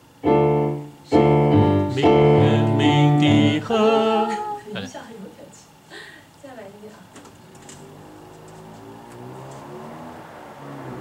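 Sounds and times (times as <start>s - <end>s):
electronic keyboard sustained notes: 0.0s - 4.7s.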